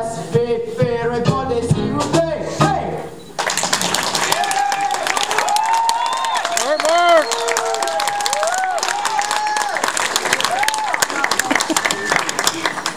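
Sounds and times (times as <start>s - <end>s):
song with singing and instruments: 0.0s - 3.4s
audience applause: 3.4s - 12.9s
voices calling out: 4.3s - 9.7s.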